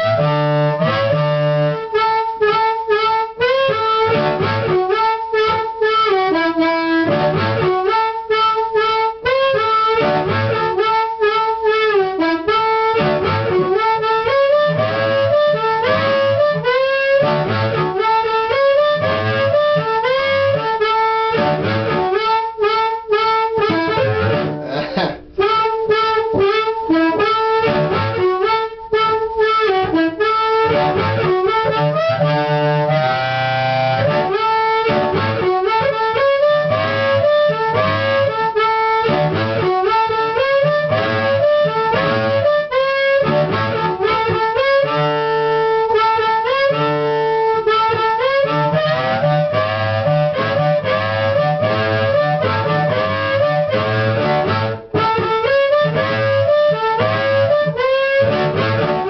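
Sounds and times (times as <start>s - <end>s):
amplified blues harmonica: 0.0s - 59.0s.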